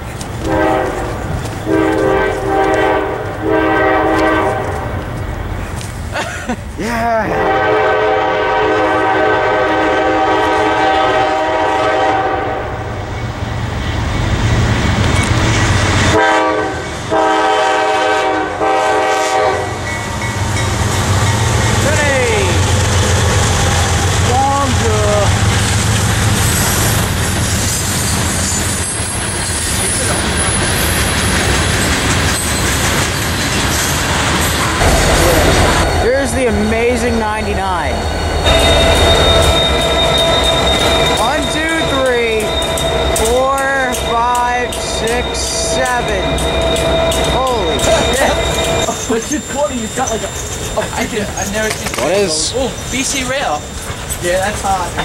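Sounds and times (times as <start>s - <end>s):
freight train rumbling by: 0.0s - 55.0s
train air horn blasts: 0.4s - 5.0s, 7.4s - 13.0s, 16.1s - 20.0s
train wheels squealing: 13.1s - 16.1s, 25.0s - 36.6s, 37.8s - 55.0s.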